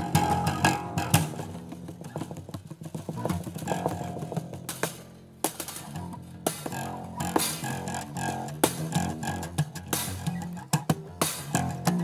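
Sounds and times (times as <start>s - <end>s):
acoustic bass guitar plucked notes: 0.0s - 2.2s, 3.2s - 5.0s, 5.7s - 12.0s
percussive hits on bass guitar: 0.0s - 2.6s, 3.2s - 12.0s
snare rattle: 0.0s - 12.0s.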